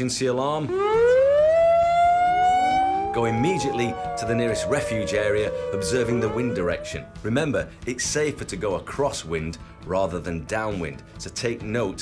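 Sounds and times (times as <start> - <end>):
wailing emergency siren: 0.7 - 7.3.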